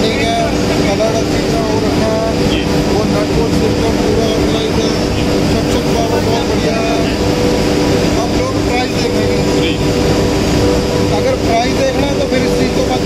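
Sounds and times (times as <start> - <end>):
dust collector motor humming: 0.0 - 13.0
steady held tones: 0.0 - 13.0.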